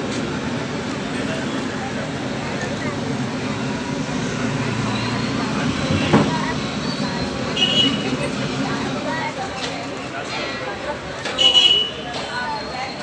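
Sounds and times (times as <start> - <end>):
crowd voices talking: 0.0 - 13.0.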